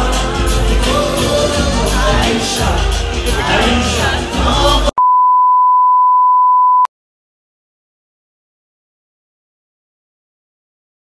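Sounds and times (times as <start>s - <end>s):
censor bleep tone: 5.0s - 6.9s.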